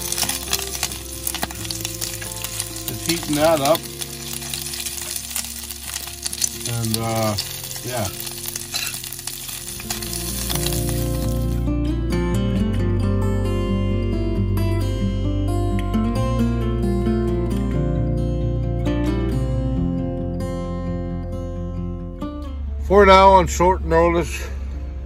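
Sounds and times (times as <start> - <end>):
sausages sizzling in a skillet: 0.0 - 11.6
background music with steady bass: 0.0 - 25.0.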